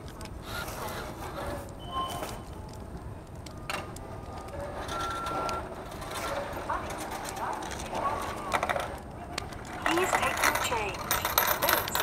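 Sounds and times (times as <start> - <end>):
murmur of busy store: 0.0 - 12.0
checkout machine beep: 1.8 - 2.5, 4.8 - 5.8, 9.8 - 12.0.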